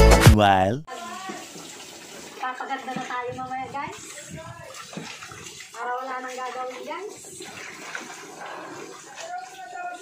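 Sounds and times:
water sloshing in a basin: 0:00.9 - 0:10.0.

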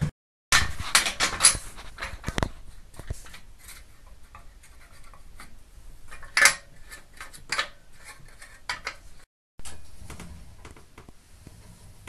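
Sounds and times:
hands handling steel weights: 0:00.5 - 0:09.9.

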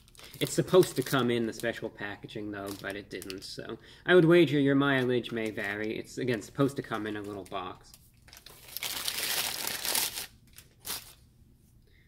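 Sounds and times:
paper bag crinkling: 0:02.6 - 0:03.5, 0:04.9 - 0:11.2.

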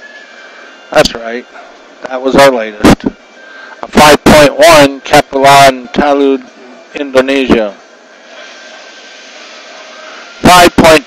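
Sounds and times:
background hiss: 0:00.0 - 0:11.0.

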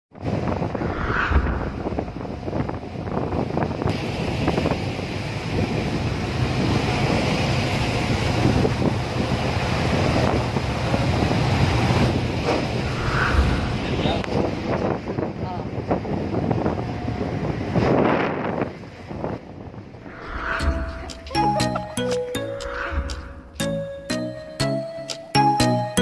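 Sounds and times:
wind buffeting microphone: 0:00.2 - 0:21.3
rushing sea water: 0:03.9 - 0:14.7
ferry engine droning: 0:18.9 - 0:26.0.

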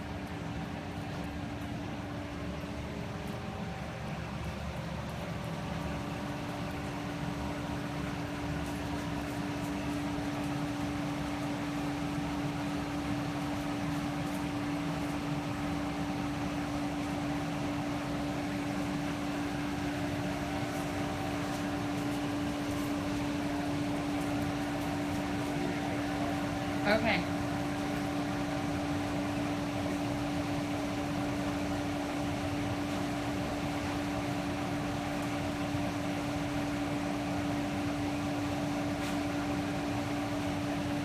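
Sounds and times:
ventilation fan humming: 0:00.0 - 0:41.0.

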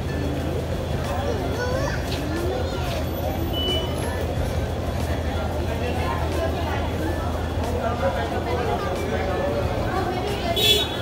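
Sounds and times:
voices of people and children: 0:00.0 - 0:11.0.

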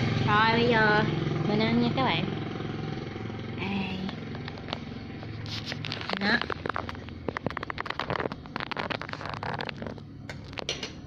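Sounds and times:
utensils clicking against ceramic bowl: 0:10.3 - 0:11.0.

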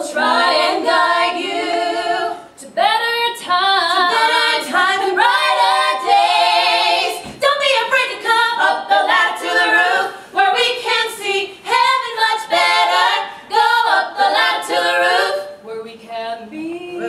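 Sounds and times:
women singing in harmony: 0:00.0 - 0:17.0.

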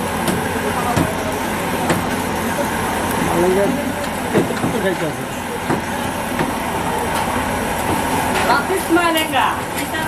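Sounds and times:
traffic: 0:00.0 - 0:10.0
voices: 0:00.0 - 0:10.0.

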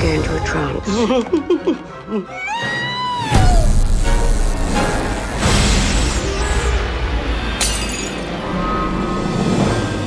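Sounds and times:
orchestral trailer music: 0:00.0 - 0:10.0
drinking glass shattering: 0:07.6 - 0:08.3.

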